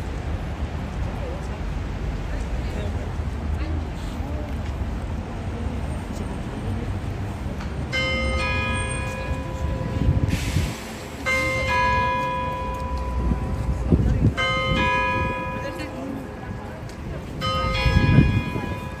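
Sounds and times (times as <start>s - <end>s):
faint voices: 0.0s - 19.0s.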